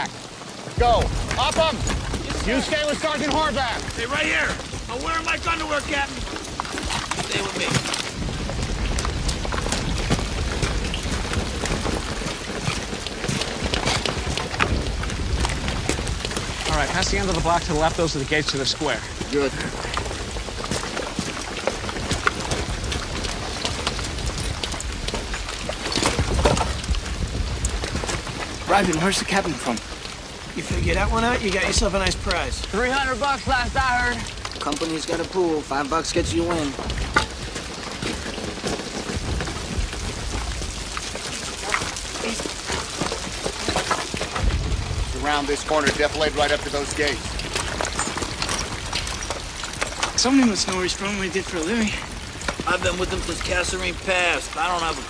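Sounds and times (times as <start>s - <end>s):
heavy rain falling: 0.0s - 55.0s
water pouring and trickling: 0.0s - 55.0s.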